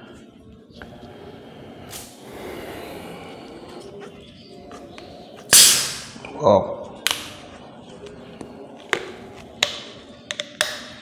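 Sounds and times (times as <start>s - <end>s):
plastic bottle cap clicking: 8.9s - 11.0s.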